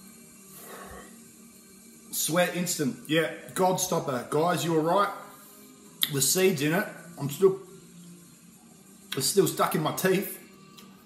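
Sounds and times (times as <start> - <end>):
man exhaling breathily: 0.5 - 1.2.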